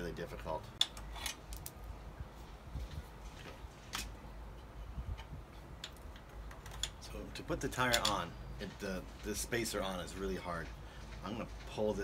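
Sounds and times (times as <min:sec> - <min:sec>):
metal parts and tools clicking: 0:00.7 - 0:01.8, 0:05.2 - 0:07.2, 0:07.8 - 0:08.3.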